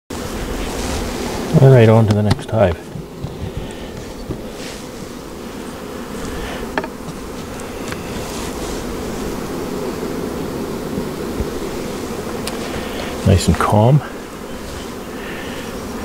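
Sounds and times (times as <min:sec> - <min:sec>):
bees buzzing in hive: 0:00.1 - 0:16.0.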